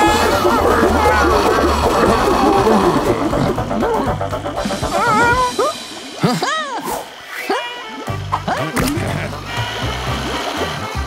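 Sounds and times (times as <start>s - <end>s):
cartoon creature squeals and yelps: 0.0s - 3.0s, 4.9s - 5.8s
backing music: 0.0s - 11.0s.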